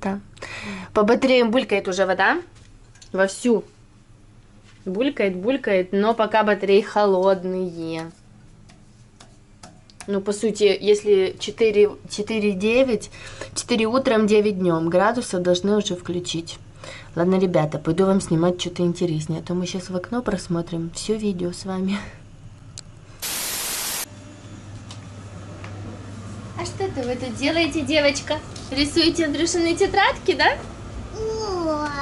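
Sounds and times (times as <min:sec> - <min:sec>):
burst of hissing static: 0:23.2 - 0:24.1.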